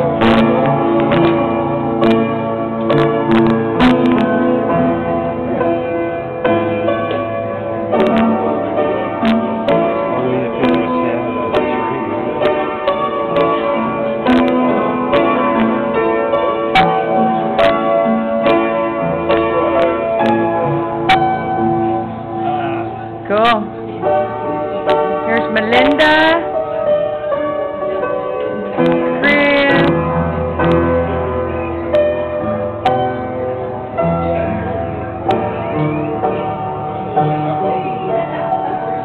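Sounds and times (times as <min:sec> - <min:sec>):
piano chords: 0:00.0 - 0:39.0.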